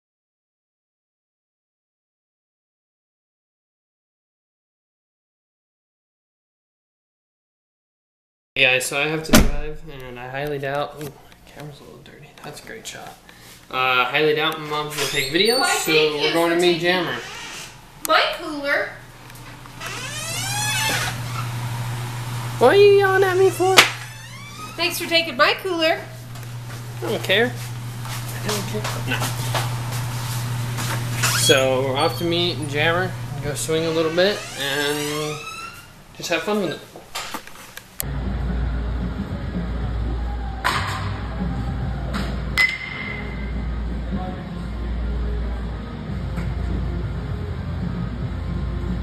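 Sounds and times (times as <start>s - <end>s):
steady low hum: 17.7s - 34.9s, 38.0s - 49.0s.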